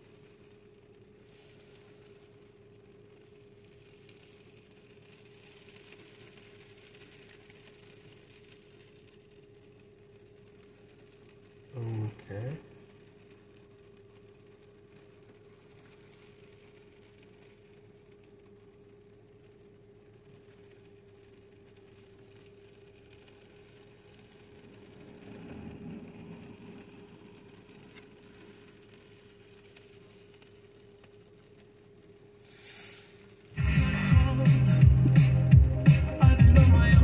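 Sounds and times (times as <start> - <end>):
engine and road rumble: 0.0 - 37.0.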